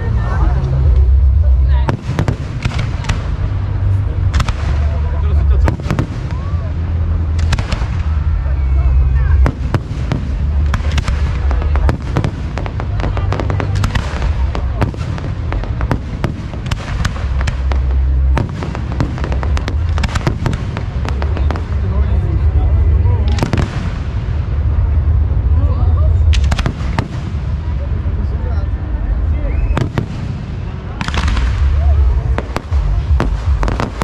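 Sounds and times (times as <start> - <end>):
fireworks bangs and crackles: 0.0 - 34.0
low rumble: 0.0 - 34.0.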